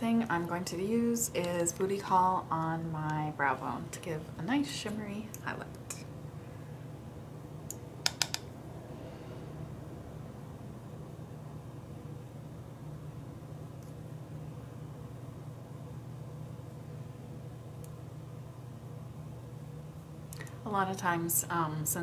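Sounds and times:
low room hum: 0:00.0 - 0:22.0
quick sharp clicks: 0:07.7 - 0:08.5.

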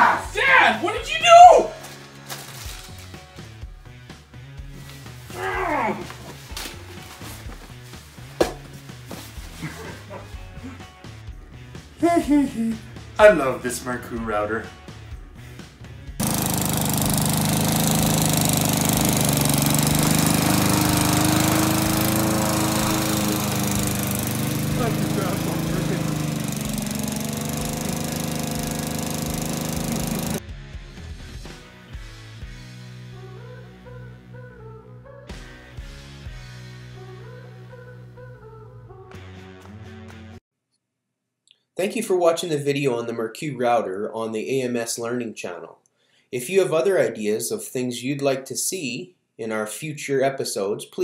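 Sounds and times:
background music with steady beat: 0:00.7 - 0:05.4, 0:06.2 - 0:16.2, 0:30.4 - 0:33.2, 0:35.3 - 0:37.0
lawn mower engine running: 0:16.2 - 0:30.4.

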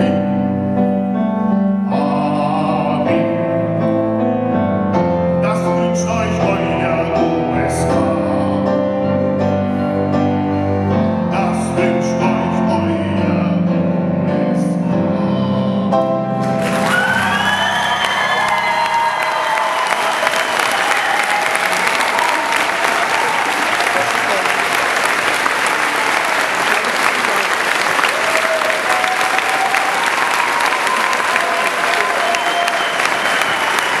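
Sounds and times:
song music: 0:00.0 - 0:19.8
loud applause: 0:16.4 - 0:34.0
audience cheering: 0:16.5 - 0:34.0.

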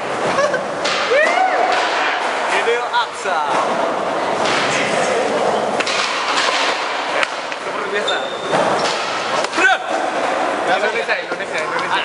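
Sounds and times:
skateboards rolling on concrete: 0:00.0 - 0:12.0
background chatter: 0:00.3 - 0:12.0
skateboard clacks: 0:05.8 - 0:07.8.

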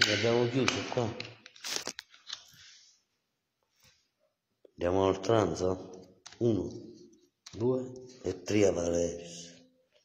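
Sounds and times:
card rustle: 0:01.5 - 0:02.6.

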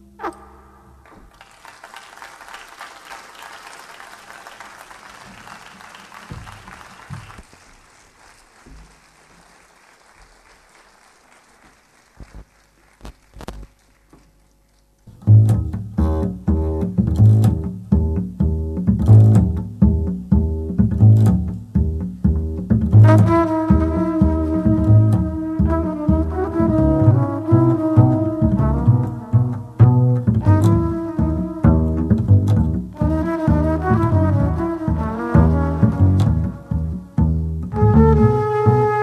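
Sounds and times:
plucked bass line: 0:15.1 - 0:39.0.

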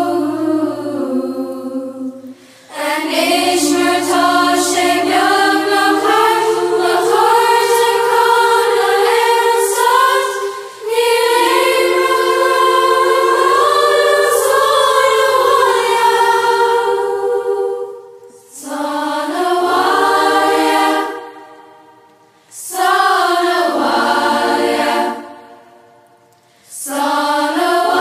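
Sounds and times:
choir singing: 0:00.0 - 0:26.0, 0:26.7 - 0:28.0.

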